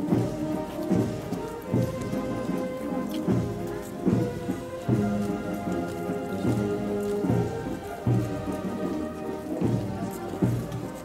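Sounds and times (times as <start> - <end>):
brass band playing a march: 0.0 - 11.0.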